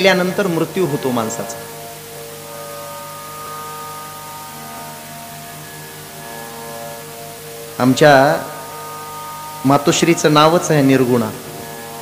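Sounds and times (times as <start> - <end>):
harmonium chord drone: 0.0 - 12.0.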